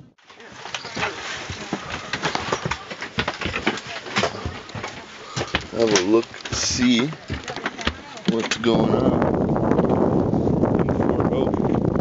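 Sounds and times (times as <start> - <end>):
clatter of knocks and clicks: 0.7 - 8.8
people talking: 5.7 - 9.2, 10.8 - 11.5.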